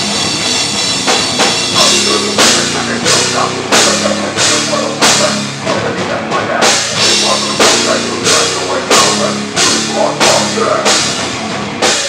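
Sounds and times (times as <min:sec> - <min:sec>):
bass guitar: 0:00.0 - 0:12.0
distorted guitar: 0:00.0 - 0:12.0
drum kit with heavy hits: 0:00.0 - 0:12.0
metal band playing live: 0:00.0 - 0:12.0.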